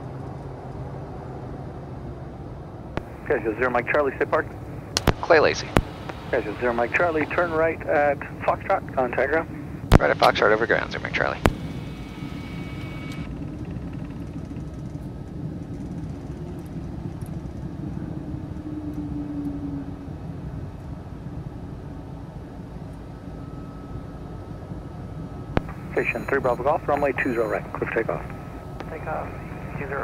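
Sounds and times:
turboprop engines low rumble: 0:00.0 - 0:30.0.

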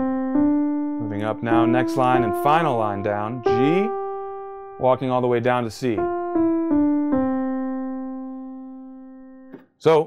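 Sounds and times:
piano notes stepping down: 0:00.0 - 0:09.6.

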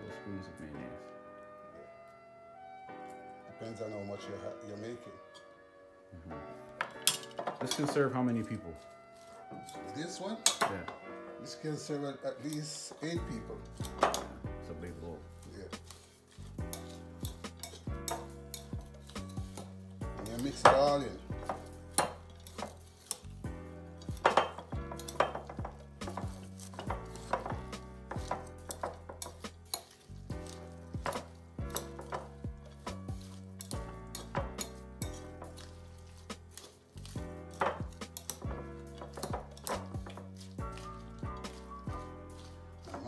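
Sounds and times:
cutlery clinking and scraping glass bowl: 0:06.8 - 0:11.0, 0:11.8 - 0:43.0
background music with bass line: 0:13.2 - 0:43.0.

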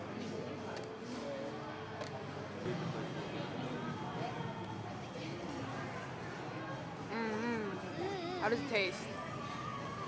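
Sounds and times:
chatter of many voices: 0:00.0 - 0:10.0.

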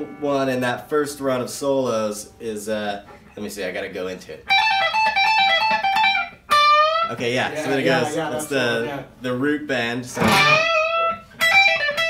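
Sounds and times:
guitar note bent upward: 0:00.0 - 0:01.4, 0:10.2 - 0:12.0
electric guitar single notes: 0:00.0 - 0:03.4, 0:04.4 - 0:08.5, 0:10.1 - 0:12.0.

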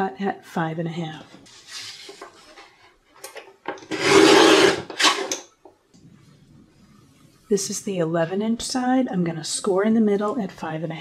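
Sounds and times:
paper trimmer blade scraping: 0:03.8 - 0:05.4.

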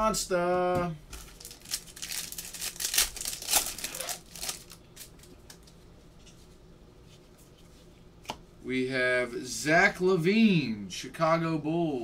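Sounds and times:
foil wrapper crinkling and tearing: 0:01.2 - 0:05.8.

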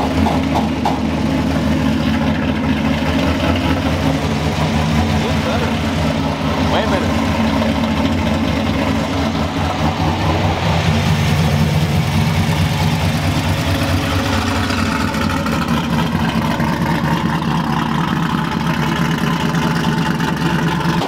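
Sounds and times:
pickup truck engine idling: 0:00.0 - 0:21.0.

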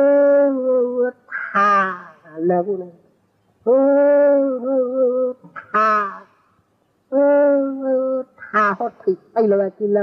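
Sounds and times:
man holding a long vowel: 0:03.7 - 0:06.3.

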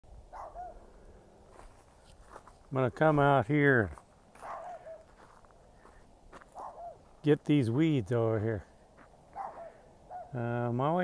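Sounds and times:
dog barking faintly: 0:00.3 - 0:00.8, 0:04.4 - 0:05.2, 0:06.5 - 0:07.1, 0:09.3 - 0:10.4.

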